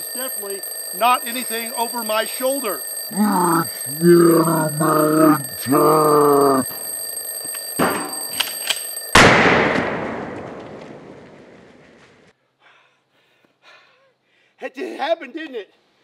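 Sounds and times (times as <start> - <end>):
alarm clock ringing: 0.0 - 9.2
loud gunshot with echo: 9.2 - 11.1.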